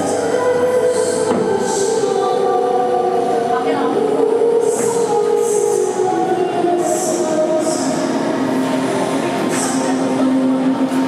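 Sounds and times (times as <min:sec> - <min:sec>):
music over speakers: 0:00.0 - 0:11.0.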